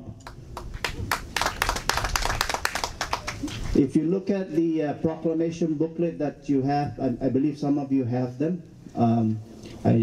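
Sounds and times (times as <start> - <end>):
audience clapping: 0.2 - 3.7.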